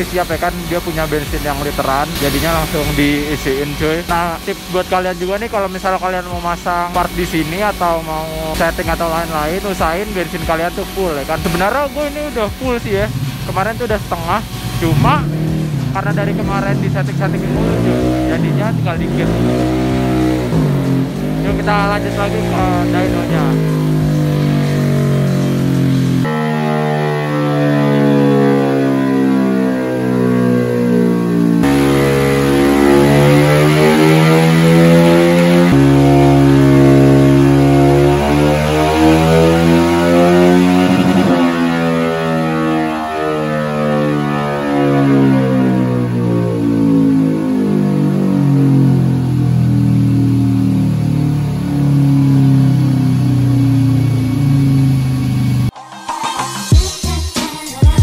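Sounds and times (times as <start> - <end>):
background music: 0.0 - 49.2, 55.6 - 58.0
scooter engine revving: 0.0 - 55.8.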